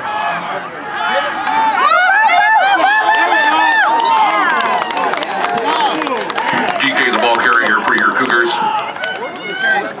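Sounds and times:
voices shouting and talking: 0.0s - 10.0s.

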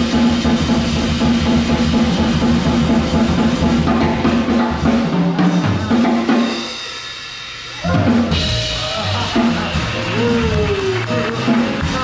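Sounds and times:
drum kit with cymbals: 0.0s - 12.0s
upright double bass: 7.8s - 12.0s.

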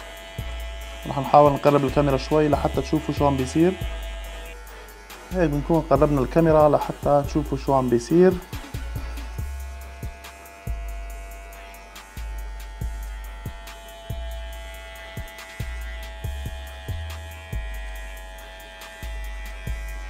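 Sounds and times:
background music: 0.0s - 20.0s
hair clipper buzzing: 0.0s - 20.0s.

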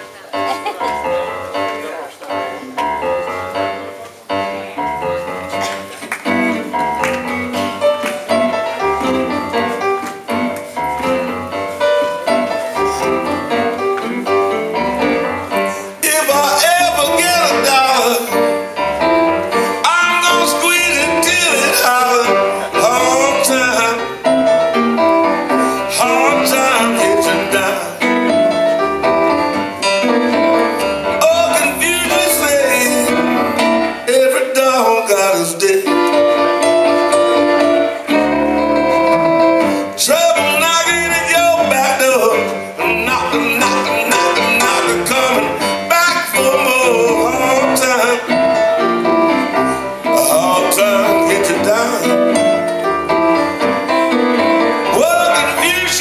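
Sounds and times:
electric keyboard: 0.0s - 34.6s, 35.9s - 56.0s
guitar: 0.0s - 56.0s
man singing: 12.2s - 18.7s, 19.6s - 24.4s, 25.5s - 28.4s, 31.0s - 36.4s, 39.8s - 49.1s, 49.9s - 52.5s, 54.7s - 56.0s.

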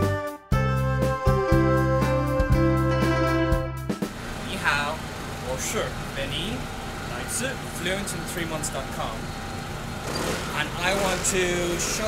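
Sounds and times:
city street traffic hum: 4.0s - 12.0s
man speaking: 4.4s - 9.3s, 10.6s - 12.0s.

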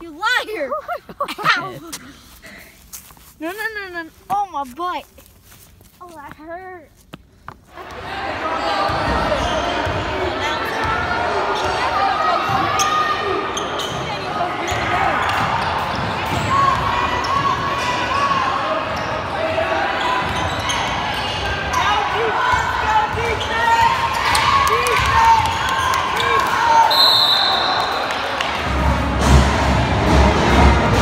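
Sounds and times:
crowd chatter: 7.7s - 31.0s
sneaker squeaks: 8.9s - 24.6s.

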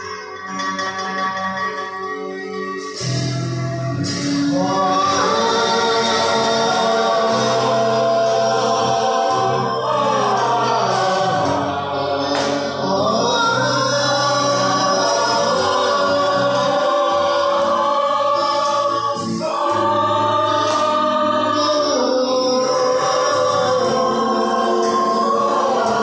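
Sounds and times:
group singing together: 4.0s - 26.0s
man singing into microphone: 4.4s - 26.0s.

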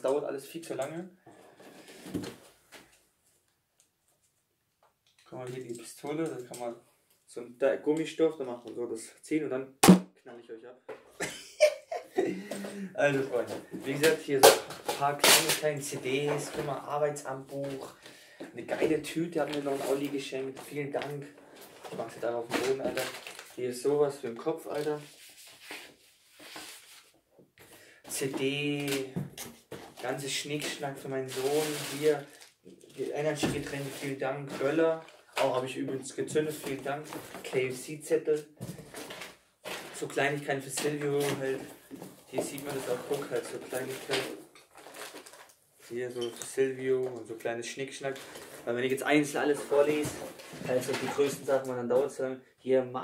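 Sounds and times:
cardboard parcel rustling: 18.8s - 23.7s, 24.5s - 35.5s, 38.8s - 46.0s, 48.0s - 51.5s.

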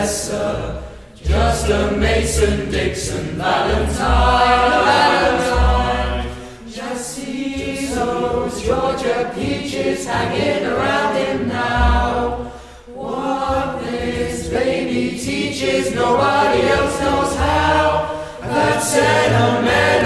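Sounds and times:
boys singing together: 0.0s - 20.0s.

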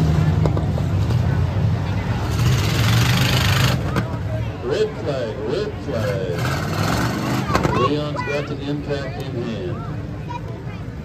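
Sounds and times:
indistinct voices talking: 1.2s - 11.0s.

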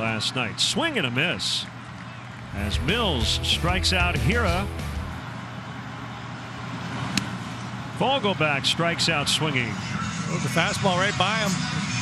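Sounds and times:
ballpark background noise: 0.0s - 3.3s.

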